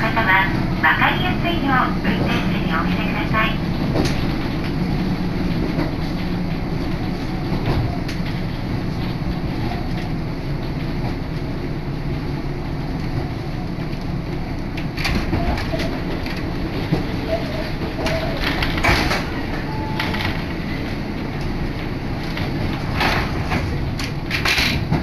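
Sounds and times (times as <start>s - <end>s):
train rumbling: 0.0s - 25.0s.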